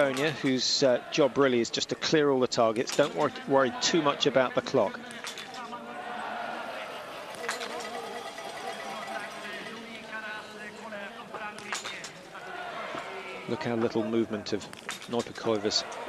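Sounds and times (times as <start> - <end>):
background voices: 0.0 - 16.0
crowd babble: 0.0 - 16.0.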